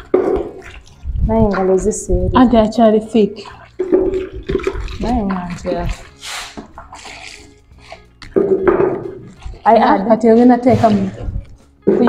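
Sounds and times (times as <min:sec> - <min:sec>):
liquid stirred in plastic basin: 0:00.0 - 0:12.0
water sloshing: 0:00.0 - 0:12.0.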